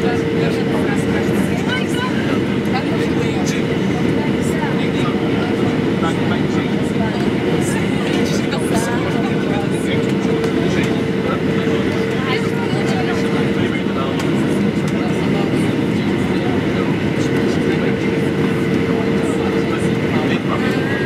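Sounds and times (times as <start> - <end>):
jet engine roar: 0.0 - 21.0.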